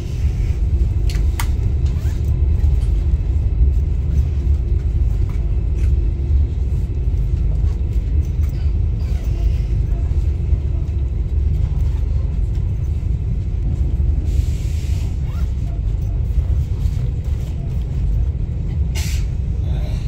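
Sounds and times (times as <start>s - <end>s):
train carriage low rumble: 0.0s - 20.0s.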